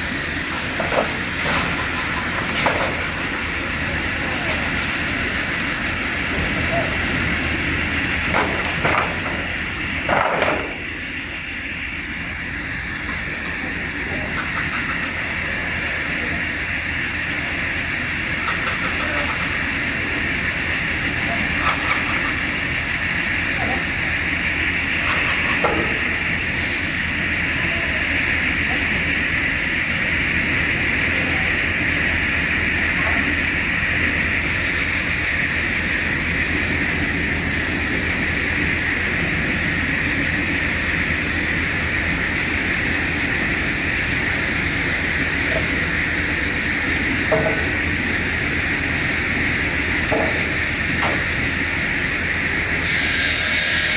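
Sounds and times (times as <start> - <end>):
saw machine whine and rumble: 0.0 - 53.9.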